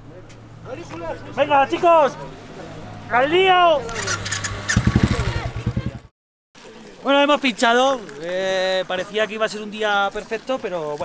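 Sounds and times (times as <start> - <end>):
motorcycle engine thumping: 4.2 - 6.1.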